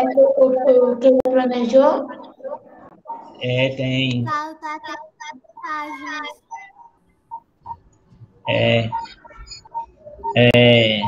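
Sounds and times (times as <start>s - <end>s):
child's sing-song voice: 4.2s - 6.7s.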